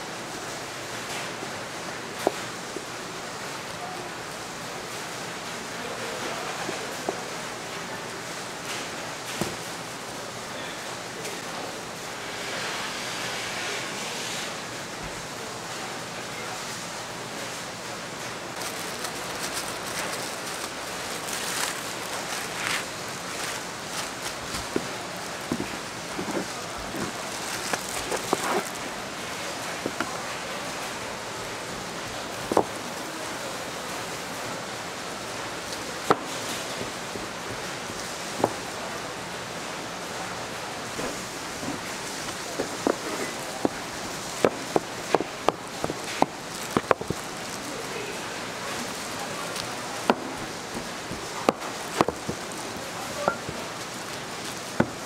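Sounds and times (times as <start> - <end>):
market background hiss: 0.0 - 55.0.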